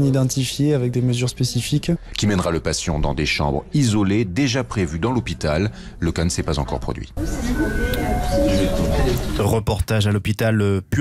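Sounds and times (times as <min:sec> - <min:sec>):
noisy background: 0:00.0 - 0:09.7
electronic chime descending tones: 0:07.2 - 0:09.4.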